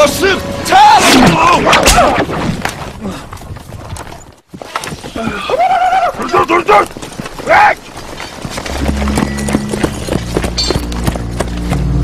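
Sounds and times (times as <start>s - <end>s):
horse hooves clattering: 2.6s - 12.0s.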